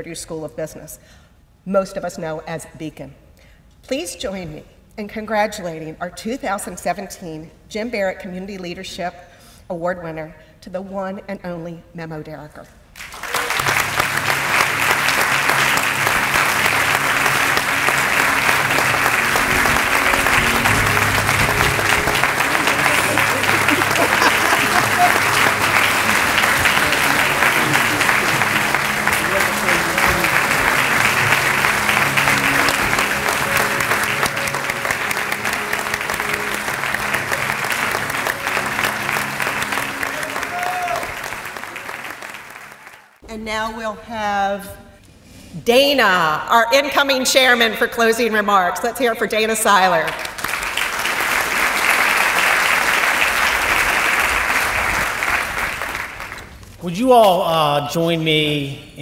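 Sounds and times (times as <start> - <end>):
audience applauding: 13.0 - 43.2, 50.1 - 56.7
song playing: 13.6 - 42.8.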